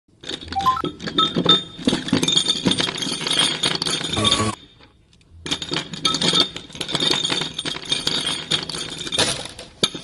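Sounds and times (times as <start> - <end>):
steel balls clinking and rattling: 0.1 - 10.0.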